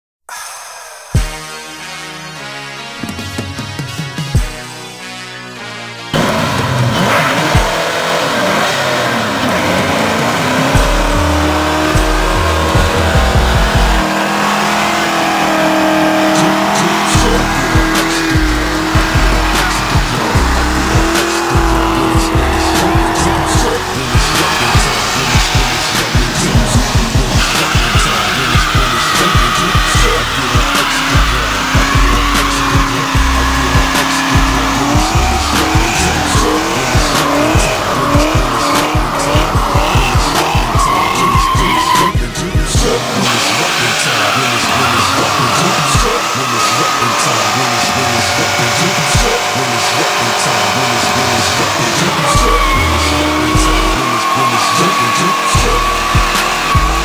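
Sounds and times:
background music: 0.3 - 57.0
car engine revving hard: 6.1 - 57.0
tyres spinning and squealing: 6.2 - 57.0.

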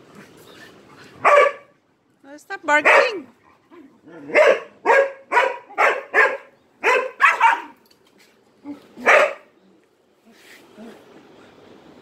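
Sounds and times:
dog barking: 1.2 - 1.7, 2.8 - 3.2, 4.3 - 7.8, 9.0 - 9.5.

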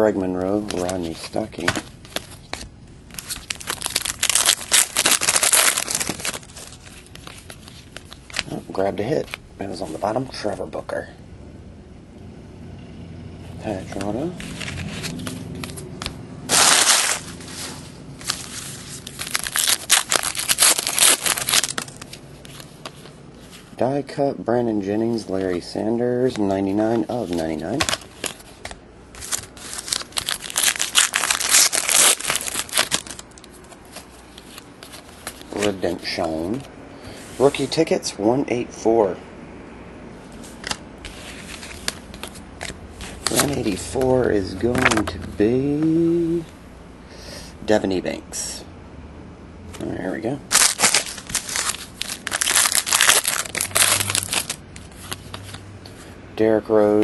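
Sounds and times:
wrapper tearing and crinkling: 3.1 - 8.5, 16.5 - 17.4, 18.2 - 22.7, 29.2 - 35.8, 50.5 - 55.6.

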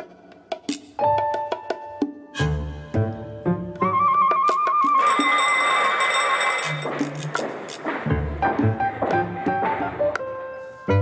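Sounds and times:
background music: 0.0 - 11.0
electric bell ringing: 5.0 - 7.7.

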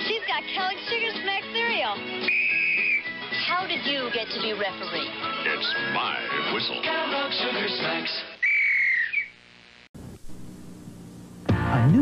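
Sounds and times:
whistle blast: 2.2 - 3.2, 8.4 - 9.4
faint steady hiss: 9.2 - 11.5.

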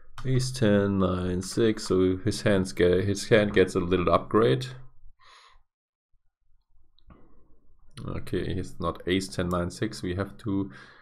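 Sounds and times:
breath out into microphone: 5.2 - 5.6, 10.7 - 11.0.

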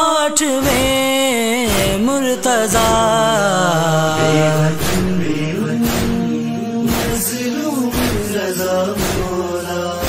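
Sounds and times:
man singing long note: 1.9 - 8.5
low sustained backing hum: 2.0 - 7.4.

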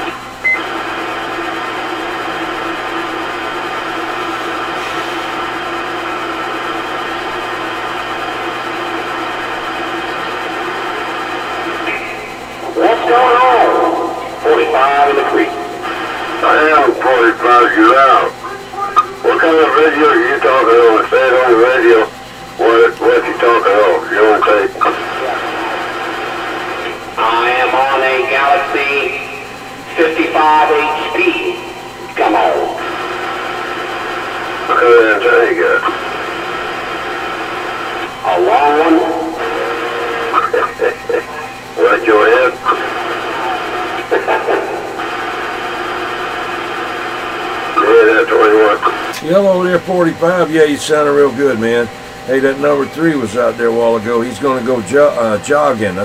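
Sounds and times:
radio receiver steady noise: 0.0 - 56.0
garbled voices over radio speaker: 8.9 - 56.0.

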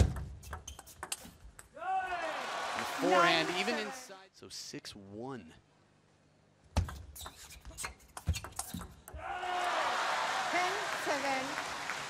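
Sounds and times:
long shout: 1.8 - 4.0, 9.2 - 11.0
crowd cheering and applause: 1.8 - 4.1, 9.2 - 12.0.

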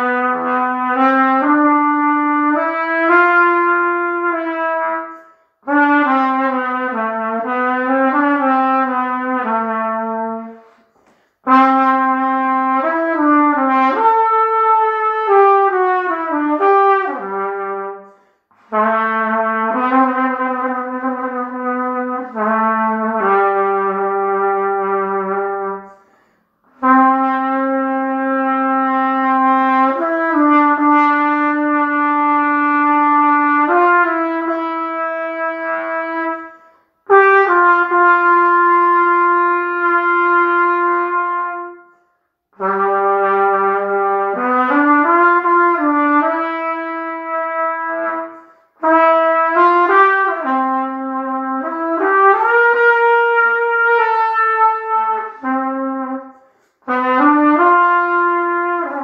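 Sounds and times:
solo brass melody: 0.0 - 59.0.

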